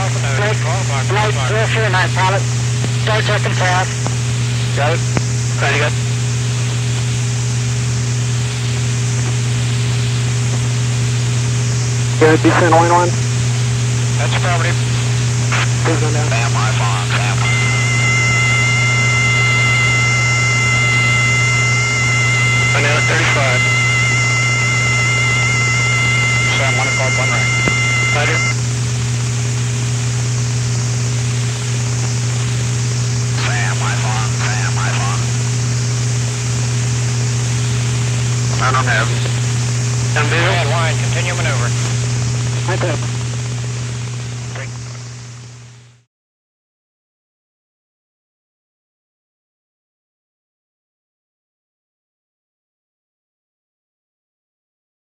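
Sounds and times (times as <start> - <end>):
intercom hum and hiss: 0.0 - 46.0
high radar signal tone: 12.2 - 13.2, 15.6 - 28.6
faint voices: 22.6 - 24.0, 26.2 - 28.6, 33.4 - 35.4
faint voice: 33.4 - 35.3.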